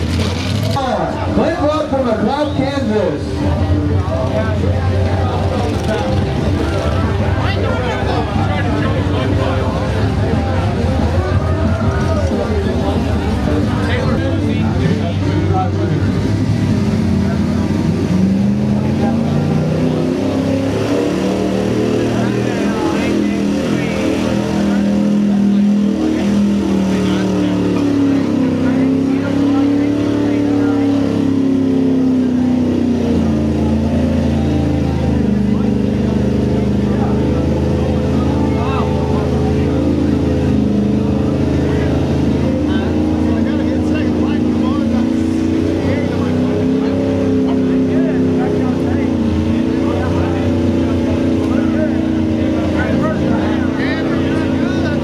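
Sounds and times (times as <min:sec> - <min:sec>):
truck engine revving: 0:00.0 - 0:55.0.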